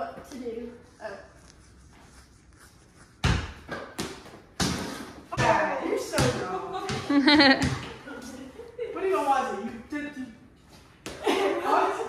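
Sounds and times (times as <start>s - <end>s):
basketball bouncing on floor: 3.2s - 8.0s.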